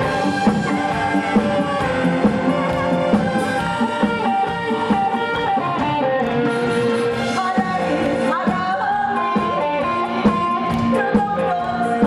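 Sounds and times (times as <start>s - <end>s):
drums: 0.0s - 12.0s
guitar: 0.0s - 12.0s
live band playing: 0.0s - 12.0s.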